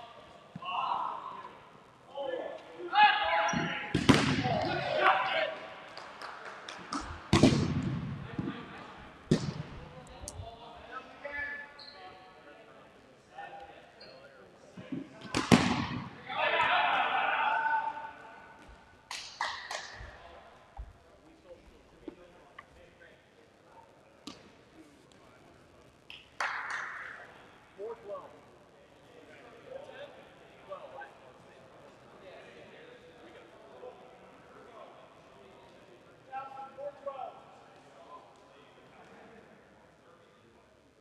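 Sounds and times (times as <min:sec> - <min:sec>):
players shouting: 0:00.6 - 0:01.6, 0:02.2 - 0:05.8, 0:16.1 - 0:18.5
dodgeballs smacking gym floor: 0:03.6 - 0:04.8, 0:06.8 - 0:08.6, 0:09.3 - 0:09.8, 0:15.2 - 0:16.1.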